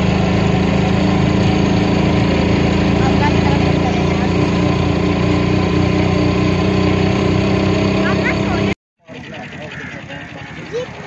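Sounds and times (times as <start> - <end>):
vehicle engine running: 0.0 - 11.0
voices outdoors: 2.3 - 5.4, 7.9 - 11.0.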